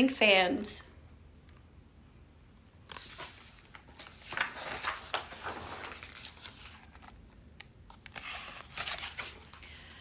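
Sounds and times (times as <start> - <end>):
book pages rustling: 2.9 - 9.7.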